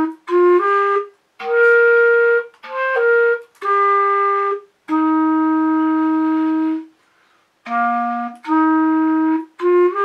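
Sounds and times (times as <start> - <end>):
solo clarinet long note: 0.0 - 6.9, 7.6 - 10.0.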